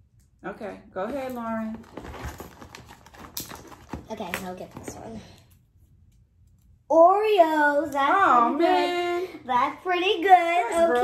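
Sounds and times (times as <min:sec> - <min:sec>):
plastic bag crinkling: 0:01.7 - 0:04.2.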